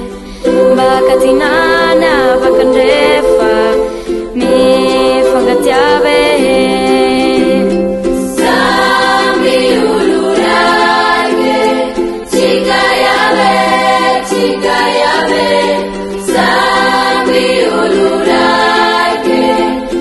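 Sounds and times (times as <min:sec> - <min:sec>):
youth choir singing: 0:00.0 - 0:20.0.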